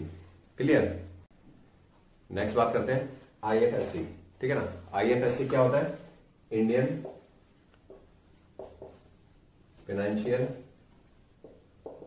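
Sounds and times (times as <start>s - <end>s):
marker pen writing on whiteboard: 2.5s - 12.0s.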